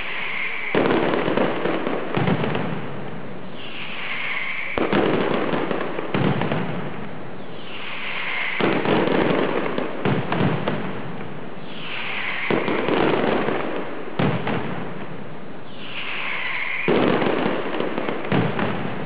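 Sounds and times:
firecrackers going off: 0:00.0 - 0:19.0
high hiss: 0:00.0 - 0:19.0.

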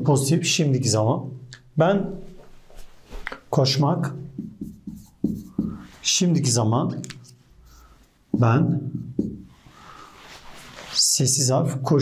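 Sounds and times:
marker squeaking on whiteboard: 0:04.4 - 0:06.0.

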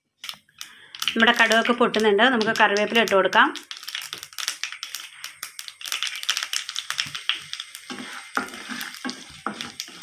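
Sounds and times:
mustard seeds crackling in oil: 0:00.2 - 0:10.0
leaves sizzling in oil: 0:00.6 - 0:10.0.

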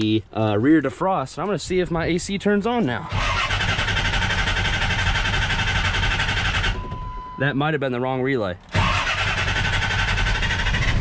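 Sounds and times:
starter cranking engine: 0:03.1 - 0:06.9, 0:08.7 - 0:11.0.

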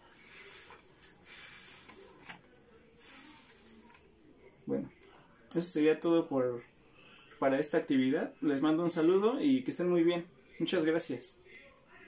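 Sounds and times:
breathy puffs of blowing: 0:00.0 - 0:02.2.

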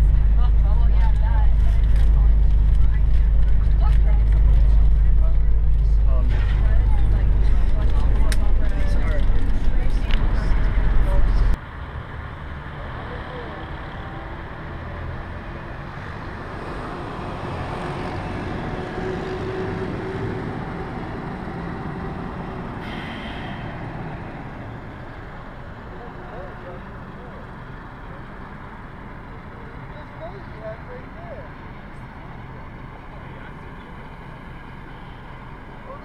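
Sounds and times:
voices: 0:00.0 - 0:11.6, 0:22.7 - 0:36.0
bus engine rumble and road noise: 0:00.0 - 0:36.0.

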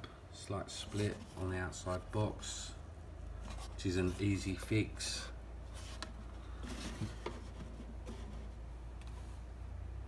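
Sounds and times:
low steady hum: 0:00.0 - 0:10.0
cardboard rustle: 0:05.7 - 0:08.6.

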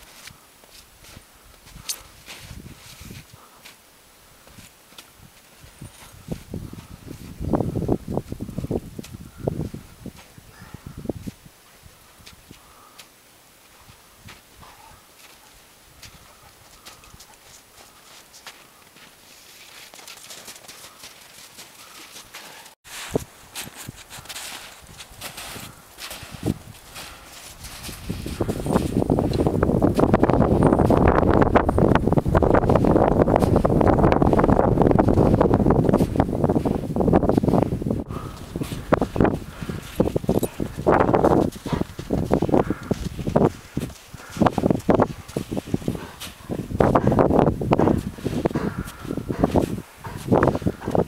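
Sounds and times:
footsteps crunching on snow: 0:00.0 - 0:03.8, 0:04.4 - 0:10.4, 0:12.2 - 0:51.0
wind rumble on microphone: 0:00.9 - 0:03.5, 0:04.4 - 0:12.9, 0:22.9 - 0:51.0.

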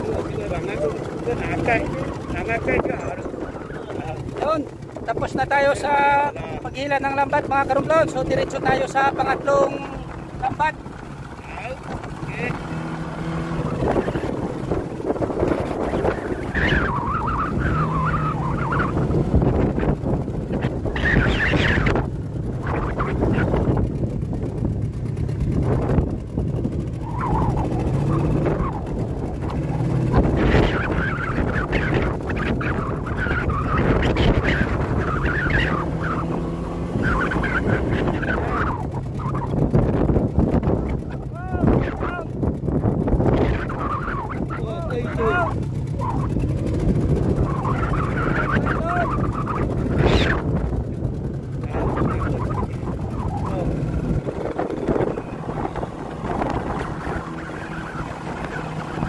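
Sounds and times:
high warbling squeaks: 0:00.0 - 0:23.7, 0:26.9 - 0:39.6, 0:43.4 - 0:50.6, 0:51.6 - 0:59.0
boat motor running: 0:00.0 - 0:59.0
wind buffeting microphone: 0:00.0 - 0:59.0.

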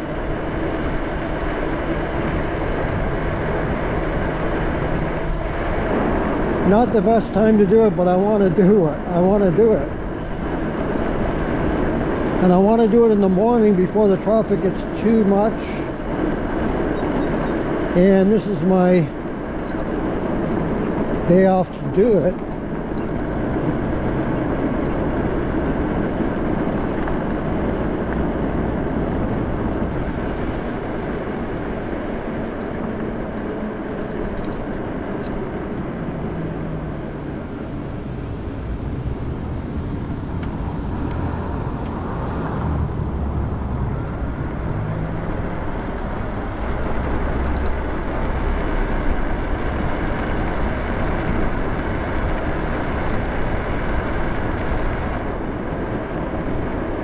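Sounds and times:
tyres rolling on asphalt: 0:00.0 - 0:57.0.

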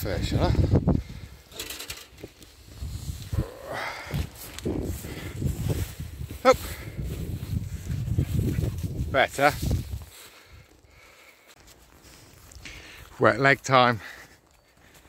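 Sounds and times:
rustling vegetation: 0:00.0 - 0:15.0
short vocal sounds: 0:03.3 - 0:05.1.

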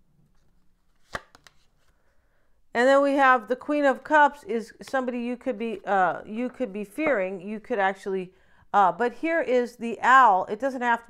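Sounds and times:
card snapping: 0:01.0 - 0:01.7.

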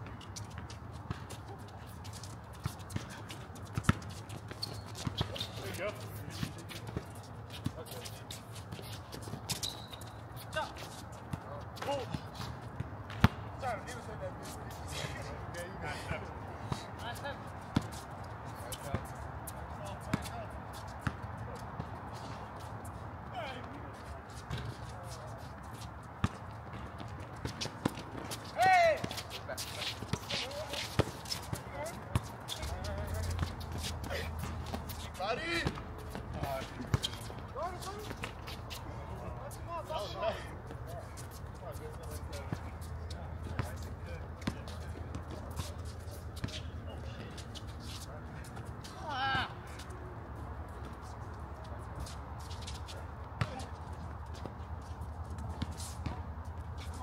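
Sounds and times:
players' footsteps: 0:00.0 - 0:57.0
basketball bouncing on hard court: 0:02.9 - 0:05.4, 0:13.1 - 0:13.5, 0:26.2 - 0:28.2
distant shouts: 0:28.5 - 0:29.7, 0:48.9 - 0:49.9.

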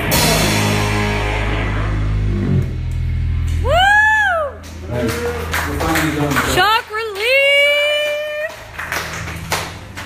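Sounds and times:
bass and guitar ringing out: 0:00.0 - 0:10.0.

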